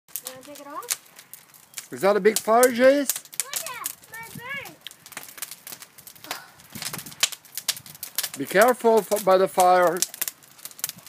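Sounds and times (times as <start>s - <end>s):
wood fire crackling: 0.1s - 11.0s.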